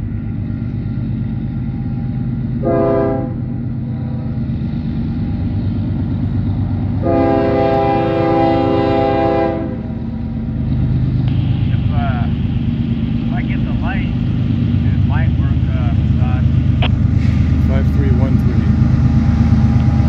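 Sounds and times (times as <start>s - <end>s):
diesel locomotive engines rumbling: 0.0s - 20.0s
locomotive horn blast: 2.6s - 3.4s, 7.0s - 10.0s.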